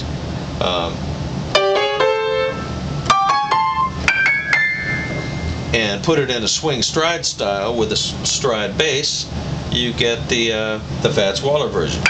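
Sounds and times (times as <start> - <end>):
piano phrases: 1.5 - 6.6.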